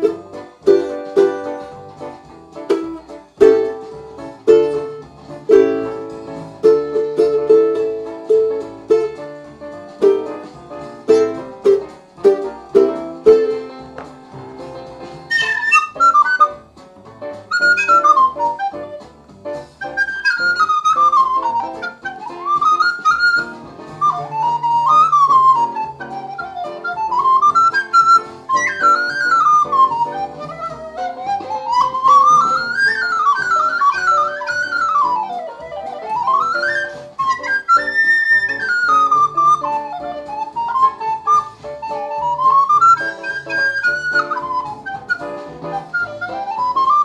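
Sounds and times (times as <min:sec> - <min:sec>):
recorder playing jazz solo: 0:00.0 - 0:47.0
ukulele chords: 0:00.0 - 0:47.0.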